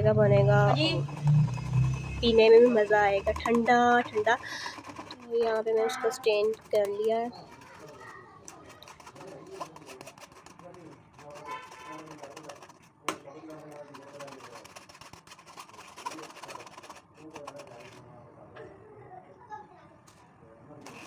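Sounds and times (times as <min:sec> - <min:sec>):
juice strained through sieve: 0:00.5 - 0:18.1.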